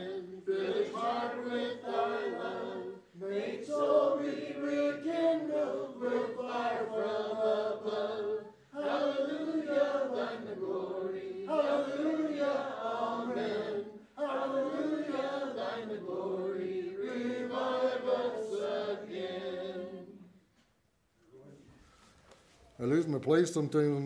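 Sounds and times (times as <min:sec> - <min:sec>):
congregation singing a hymn: 0:00.0 - 0:20.5.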